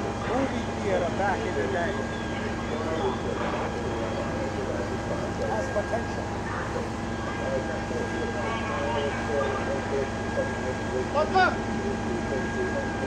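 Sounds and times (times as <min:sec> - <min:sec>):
constant whine: 0:00.0 - 0:13.0
fire engine running: 0:00.0 - 0:13.0
indistinct voices: 0:00.0 - 0:13.0.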